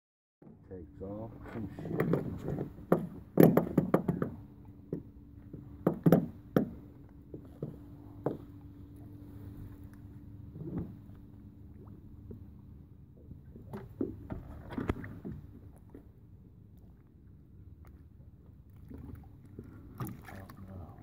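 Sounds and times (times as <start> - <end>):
faint steady hum: 0.5 - 21.0
knocks and clicks on boat hull: 1.9 - 8.6.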